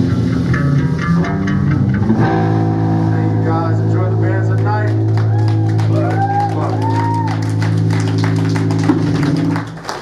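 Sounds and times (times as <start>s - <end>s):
guitar chord drone through amplifiers: 0.0s - 9.8s
scattered clapping: 4.4s - 10.0s.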